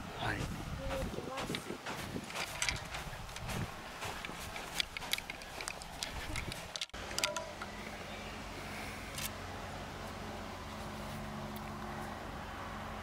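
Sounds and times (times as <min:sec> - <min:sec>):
golf clubs clicking together: 0:04.2 - 0:07.4.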